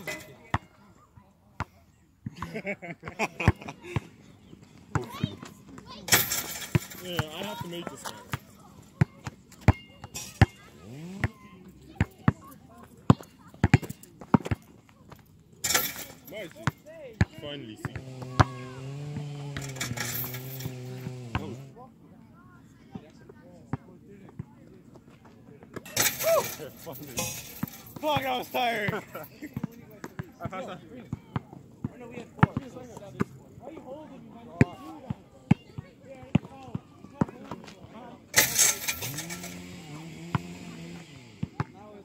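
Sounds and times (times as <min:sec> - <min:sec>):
basketball bouncing on asphalt: 0:06.7 - 0:15.1, 0:16.6 - 0:18.8, 0:31.1 - 0:33.3, 0:35.5 - 0:37.6, 0:41.4 - 0:41.8.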